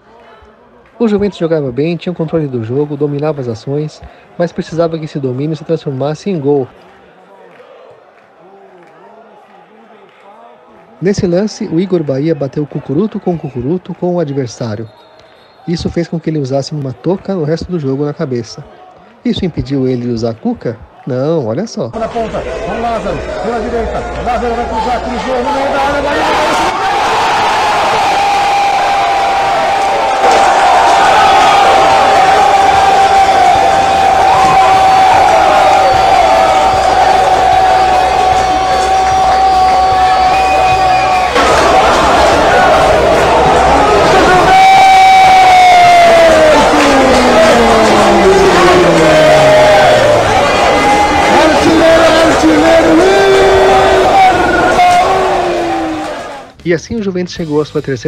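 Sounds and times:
crowd cheering and shouting: 0.0 - 56.6.

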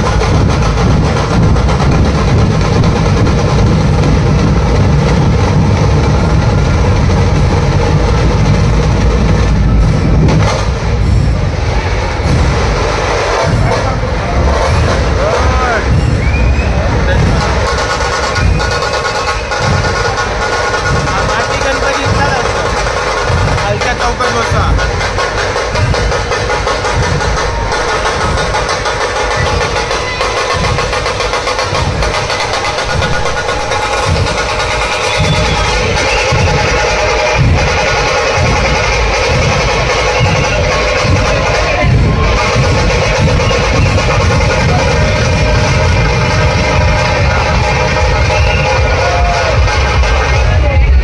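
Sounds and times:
heavy drums beating: 0.0 - 51.0.

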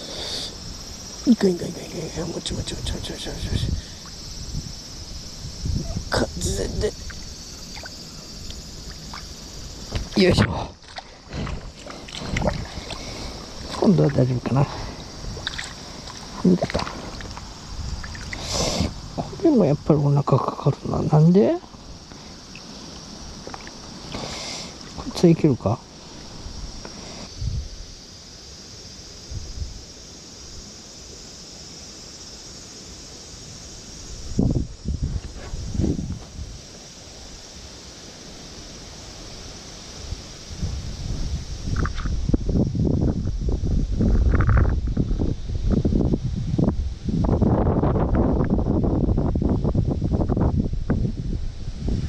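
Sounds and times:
steady outdoor hiss: 0.0 - 52.0
wind buffeting microphone: 2.0 - 24.0, 25.0 - 28.0, 34.0 - 36.7, 40.0 - 52.0.

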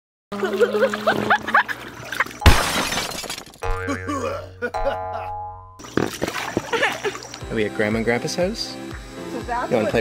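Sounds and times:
glass breaking crash: 2.4 - 3.9
boing sounds: 3.6 - 6.2.

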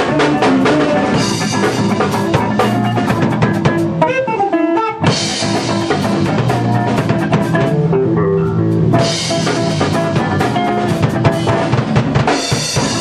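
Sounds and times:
rock band playing: 0.0 - 13.0.

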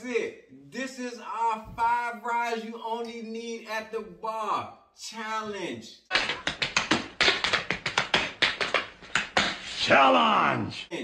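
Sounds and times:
tap-dance steps on hard floor: 6.1 - 9.6.

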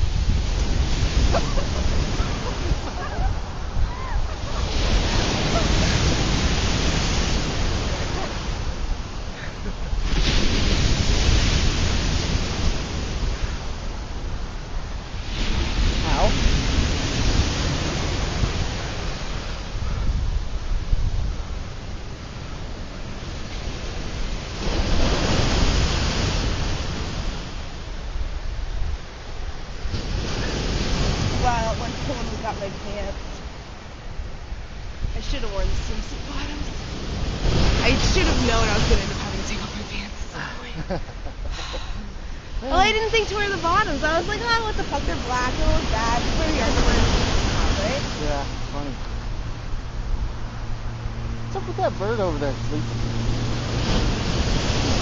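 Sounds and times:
ocean waves crashing on beach: 0.0 - 55.0.

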